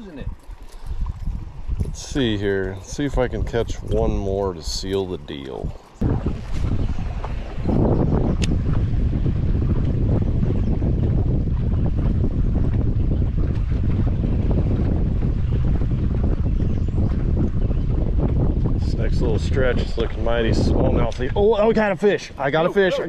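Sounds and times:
water slapping around boat: 0.0s - 23.0s
wind buffeting microphone: 0.0s - 23.0s.

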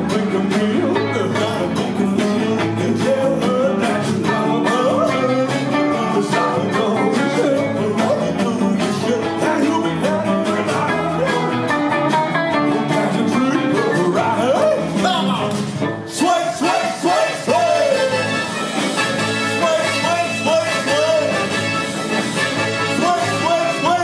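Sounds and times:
man singing: 0.0s - 18.5s, 19.2s - 21.8s, 22.6s - 24.0s
rock band playing: 0.0s - 24.0s.

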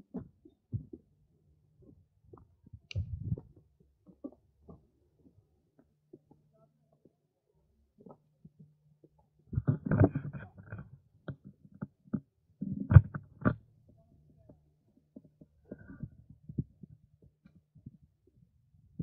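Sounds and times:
low thumps and rumbling crackles: 2.3s - 4.8s.

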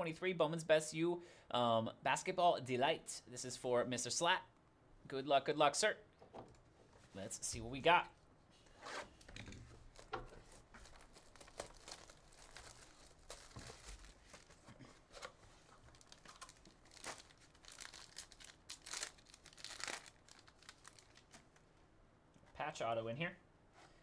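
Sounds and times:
plastic wrap crinkling and tearing: 9.8s - 21.6s
foil pack being opened: 9.9s - 14.6s, 15.2s - 21.4s.

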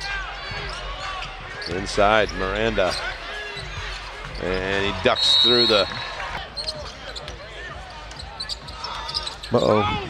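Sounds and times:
murmur of arena crowd: 0.0s - 10.0s
sneakers squeaking: 0.5s - 9.9s.

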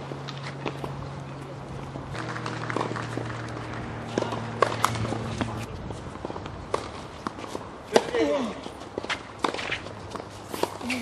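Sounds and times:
tennis ball hitting rackets: 2.1s - 11.0s.

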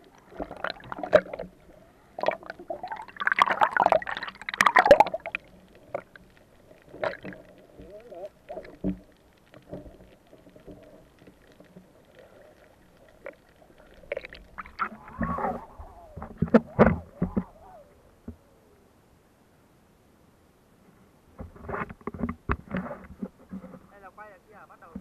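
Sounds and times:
muffled underwater gurgling: 0.0s - 18.8s.

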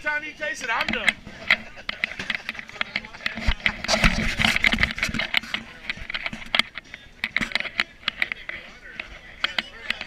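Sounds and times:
group of people talking: 0.0s - 10.0s
sharp clicks and knocks: 0.8s - 10.0s.

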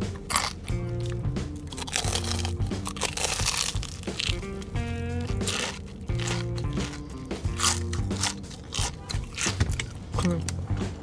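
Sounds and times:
crunchy bites into fried crust: 0.0s - 10.4s
background music: 0.0s - 11.0s.

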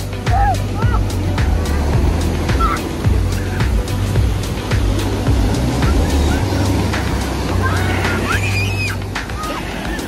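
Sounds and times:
background music with beat: 0.0s - 10.0s
ocean surf breaking: 0.0s - 10.0s.

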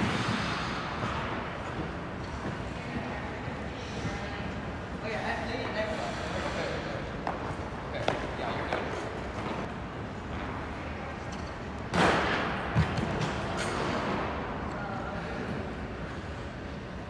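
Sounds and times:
skate blade scraping ice: 0.0s - 1.4s
skates gliding on ice: 0.0s - 3.1s.

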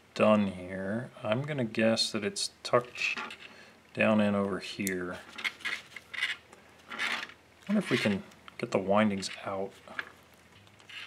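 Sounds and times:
metal clinks and scrapes: 5.3s - 8.2s.

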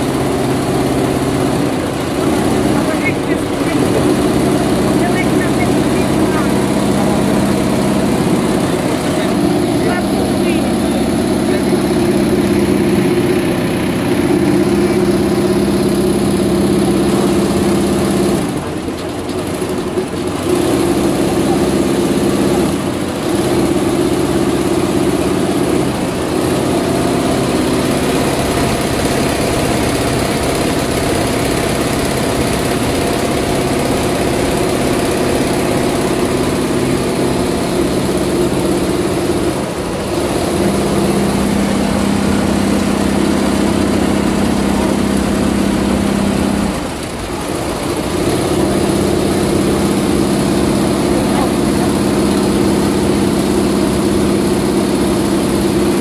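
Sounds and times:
embroidery machine whirring: 0.0s - 56.0s.

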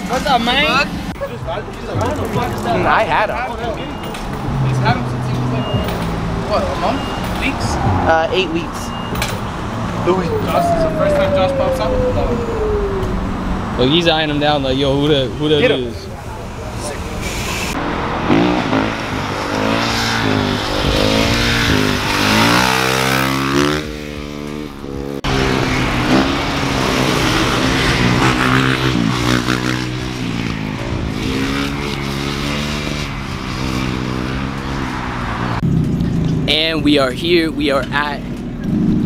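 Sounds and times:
car engines revving: 0.0s - 39.0s.

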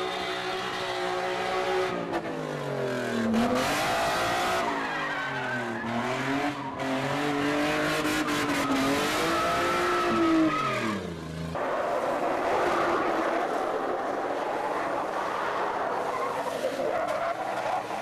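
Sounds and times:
car engine revving: 0.9s - 15.2s.

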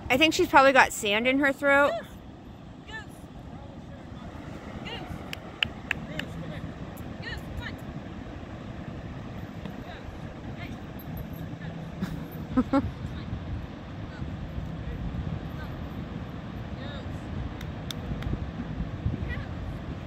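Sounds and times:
ocean surf: 0.0s - 20.0s.

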